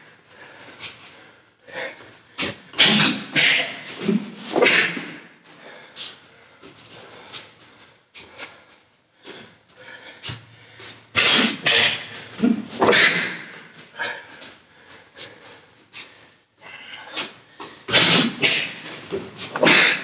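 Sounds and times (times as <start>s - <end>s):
sharp exhaled breaths: 0.2s - 20.0s.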